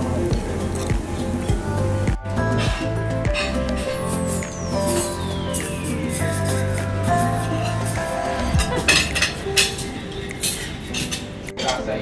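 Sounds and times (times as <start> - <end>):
soft background music: 0.0 - 12.0
cutlery clinking on plates: 8.8 - 11.9.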